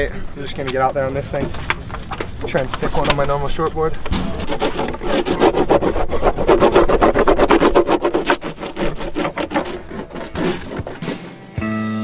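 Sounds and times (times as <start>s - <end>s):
wax scraping on surfboard: 1.5s - 11.5s.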